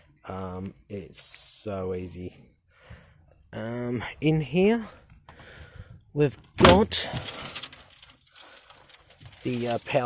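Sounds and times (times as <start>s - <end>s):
faint handling noise: 7.0s - 10.0s
metal box door scraping and rattling: 9.1s - 10.0s.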